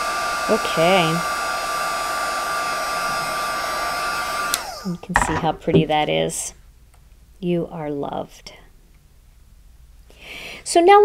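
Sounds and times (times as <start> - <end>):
heat tool fan whine: 0.0 - 6.5.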